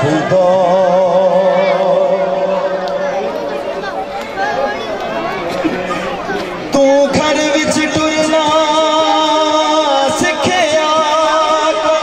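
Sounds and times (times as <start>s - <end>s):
crowd talking and calling: 0.0s - 12.0s.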